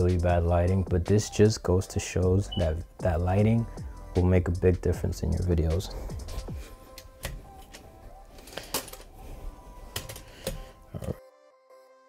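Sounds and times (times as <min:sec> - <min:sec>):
faint background music: 0:00.0 - 0:11.3.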